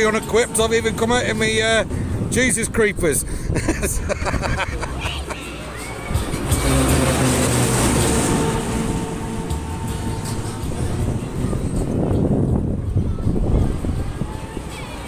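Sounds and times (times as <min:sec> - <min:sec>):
ferris wheel mechanical hum: 0:00.0 - 0:15.0
wind: 0:00.0 - 0:15.0
person laughing: 0:03.4 - 0:05.5.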